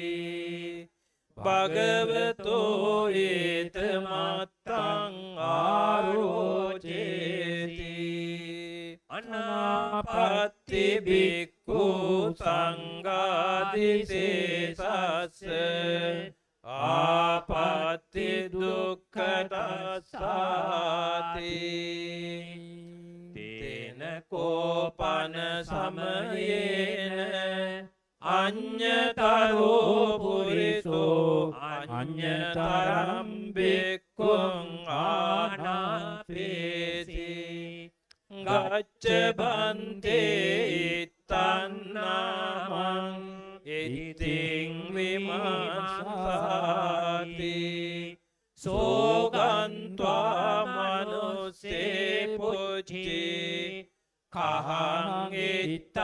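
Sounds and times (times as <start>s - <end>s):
person chanting into a microphone: 0.0s - 56.0s.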